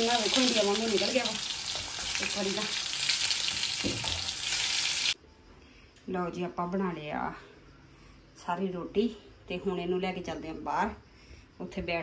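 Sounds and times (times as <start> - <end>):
vegetables sizzling in hot oil: 0.0 - 5.2.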